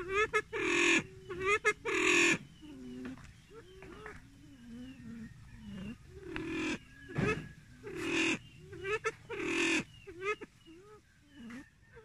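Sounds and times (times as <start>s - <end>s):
pheasant calling: 0.0s - 12.0s.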